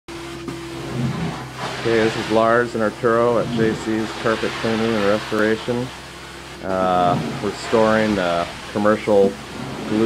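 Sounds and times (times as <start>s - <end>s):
machine hum: 0.1s - 10.0s.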